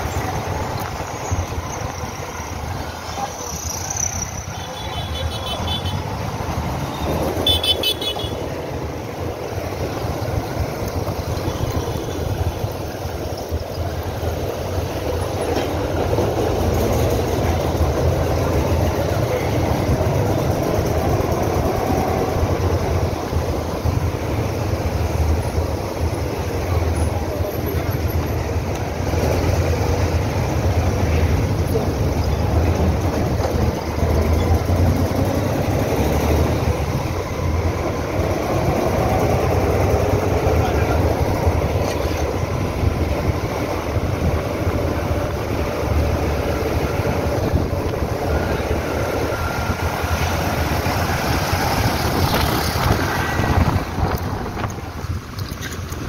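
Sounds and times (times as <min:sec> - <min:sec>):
road and wind noise: 0:00.0 - 0:56.0
surrounding traffic: 0:00.0 - 0:56.0.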